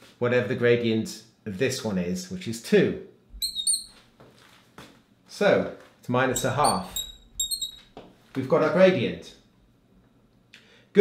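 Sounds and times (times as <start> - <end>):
marker pen squeaking on glass: 3.3 - 4.0, 6.3 - 8.0.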